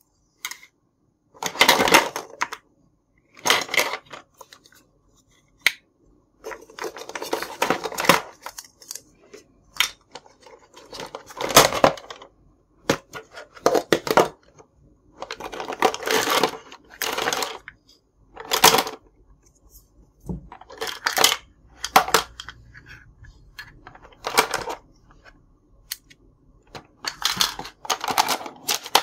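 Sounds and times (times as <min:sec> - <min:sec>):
plastic toy pieces clattering: 0:01.4 - 0:02.6, 0:03.3 - 0:04.6, 0:06.4 - 0:09.1, 0:09.7 - 0:12.3, 0:12.9 - 0:14.5, 0:15.2 - 0:19.1, 0:20.5 - 0:26.0, 0:26.7 - 0:29.0.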